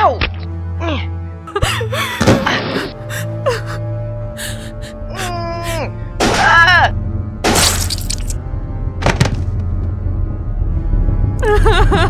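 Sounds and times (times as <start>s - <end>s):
low music drone: 0.0s - 12.0s
women gasping and breathing hard: 1.6s - 5.9s.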